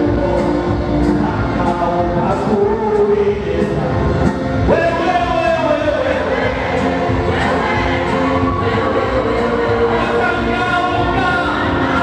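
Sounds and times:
musical accompaniment: 0.0s - 12.0s
choir singing: 5.7s - 12.0s.

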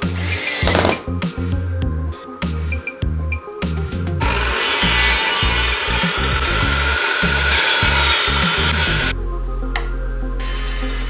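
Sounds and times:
table saw cutting wood: 0.0s - 1.1s, 4.2s - 9.1s.

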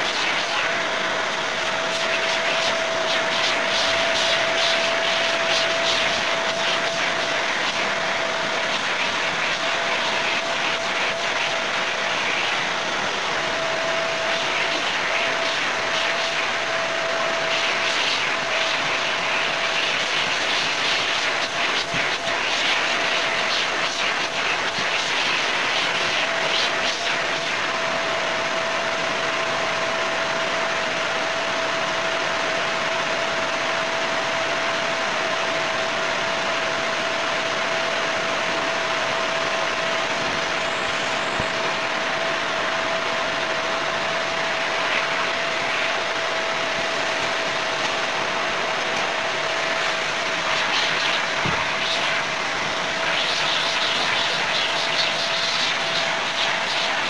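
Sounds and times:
vacuum cleaner motor whine: 0.0s - 57.0s.

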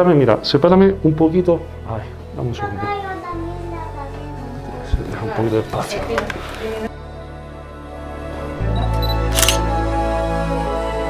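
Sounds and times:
background music with chords: 0.0s - 11.0s
camera shutter double click: 8.8s - 9.7s.

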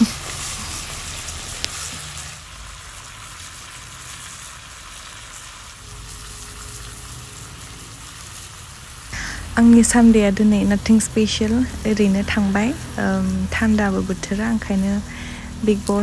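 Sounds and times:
meat sizzling in a wok: 0.0s - 16.0s.

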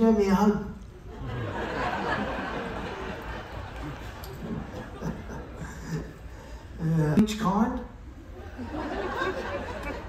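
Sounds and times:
audience chattering: 0.9s - 7.1s, 8.1s - 10.0s.

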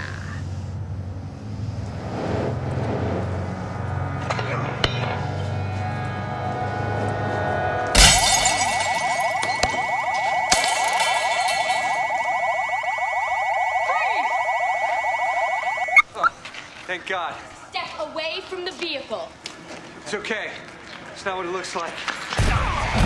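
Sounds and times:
glass shattering: 8.0s - 12.5s
car alarm warbling: 8.0s - 16.3s.

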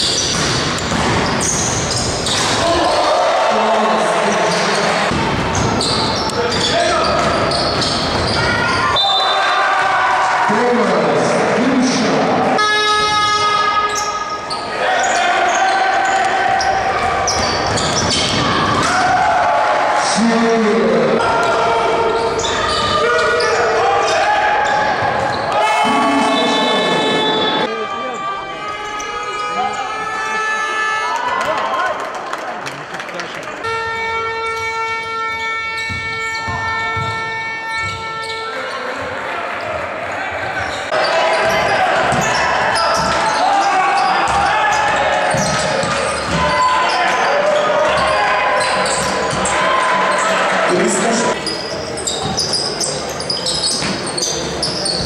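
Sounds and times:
basketball bouncing on court: 0.0s - 2.6s, 5.1s - 8.8s, 34.5s - 38.5s, 41.4s - 43.4s, 44.0s - 46.7s, 53.7s - 55.0s
players and spectators voices: 0.0s - 55.0s
steady horn: 12.6s - 14.0s, 33.6s - 38.6s.

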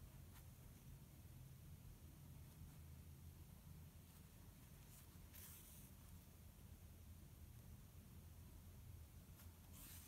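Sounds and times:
yarn rustling through stitches: 3.9s - 6.5s, 9.2s - 10.0s.

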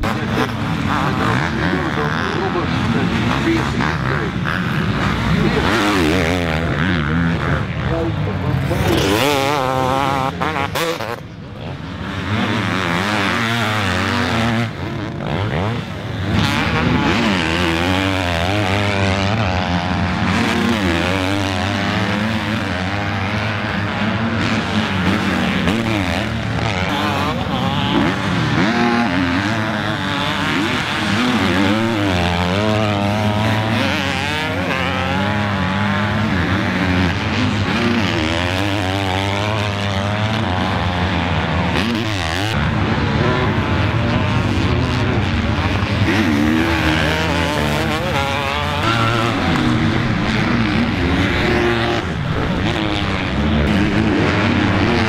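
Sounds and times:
motocross bike engines revving: 0.0s - 55.0s.

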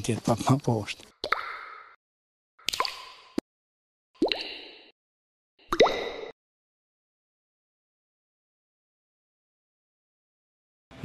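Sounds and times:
water drops plopping from tap: 4.2s - 4.6s, 5.7s - 6.3s.

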